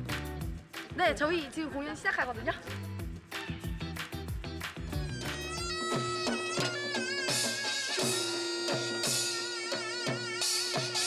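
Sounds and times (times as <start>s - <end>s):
drum strikes: 4.9s - 11.0s
shrill reed pipe melody: 5.0s - 11.0s.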